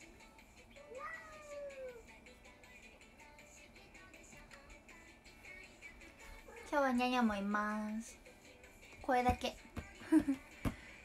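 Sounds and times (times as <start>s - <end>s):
quiet background music: 0.0s - 11.0s
cat meowing: 0.8s - 2.1s.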